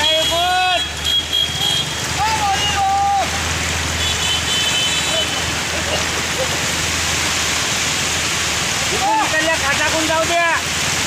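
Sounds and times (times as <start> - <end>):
heavy rain hissing: 0.0 - 11.0
rushing floodwater: 0.0 - 11.0.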